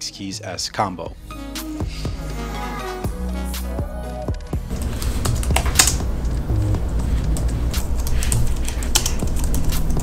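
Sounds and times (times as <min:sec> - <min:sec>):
fast keyboard typing: 0:04.3 - 0:10.0.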